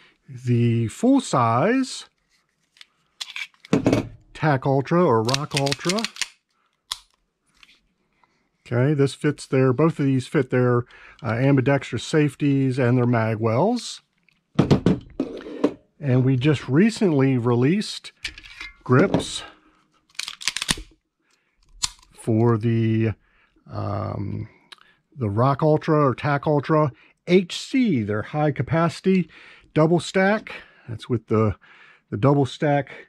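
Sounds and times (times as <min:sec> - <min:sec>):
pistol handling sounds: 0:02.7 - 0:03.8, 0:05.2 - 0:07.8, 0:18.2 - 0:21.0, 0:21.6 - 0:22.2
pistol clicks: 0:20.2 - 0:20.9.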